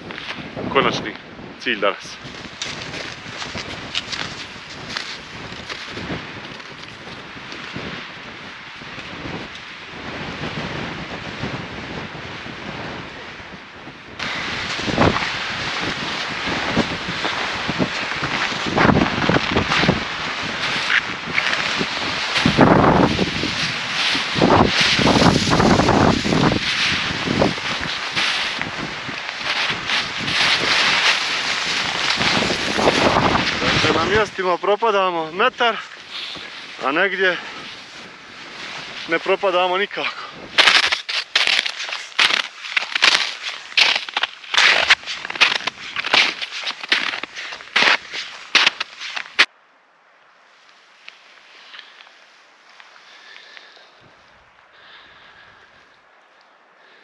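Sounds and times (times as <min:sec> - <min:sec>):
wind buffeting microphone: 0:00.0 - 0:49.5
footsteps in snow: 0:02.0 - 0:07.9, 0:14.2 - 0:49.5.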